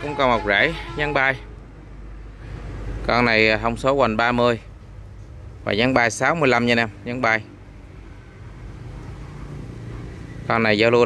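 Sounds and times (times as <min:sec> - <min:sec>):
low outdoor background hum: 0:00.0 - 0:11.0.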